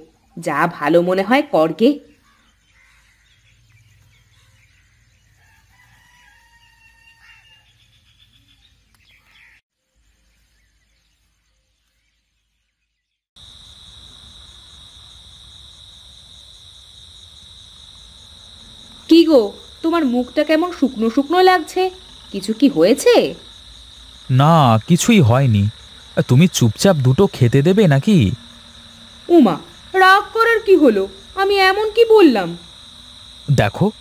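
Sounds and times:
faint outdoor ambience: 0.0s - 12.8s, 13.4s - 34.0s
rooster crowing: 5.3s - 7.8s
crickets chirring: 13.4s - 34.0s.

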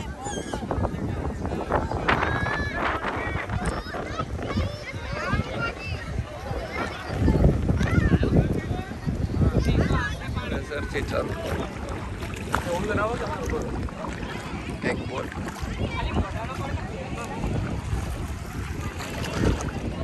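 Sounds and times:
people chattering: 0.0s - 20.0s
wind rumbling on microphone: 0.0s - 20.0s.

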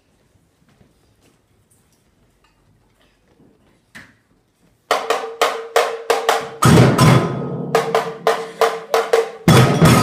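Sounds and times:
hand drum sharp ringing strikes: 6.3s - 10.0s.

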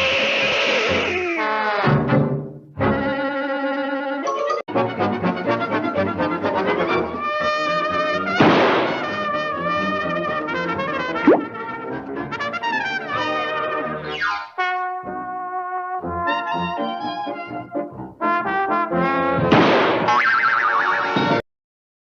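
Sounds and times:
slapstick cartoon music with brass: 0.6s - 3.4s, 4.3s - 21.4s
boing-like falling glide: 11.3s - 11.5s
falling swoop sound effect: 11.3s - 11.5s.

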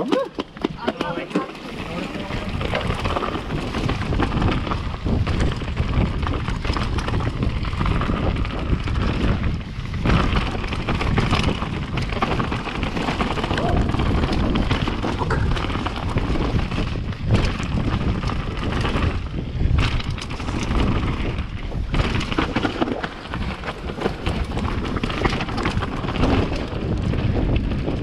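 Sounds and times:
tyre rumble: 0.0s - 28.0s
wind on microphone: 0.0s - 28.0s
bike frame rattling: 0.4s - 28.0s.

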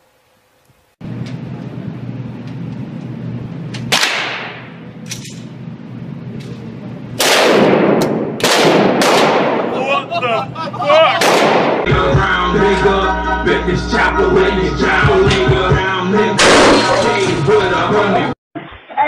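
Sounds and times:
handgun shots with reverberation: 3.9s - 5.4s, 7.2s - 9.7s, 11.2s - 11.8s
music: 11.9s - 18.4s.

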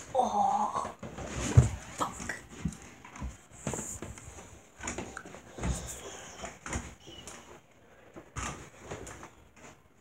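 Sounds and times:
footsteps walking down stairs: 0.8s - 10.0s.

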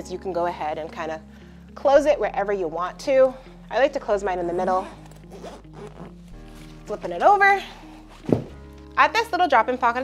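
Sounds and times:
bag zipper closing: 4.3s - 8.8s.

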